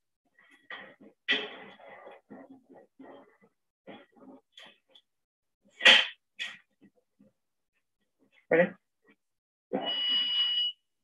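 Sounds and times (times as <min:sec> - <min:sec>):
high electronic beep: 0:09.8 - 0:10.8.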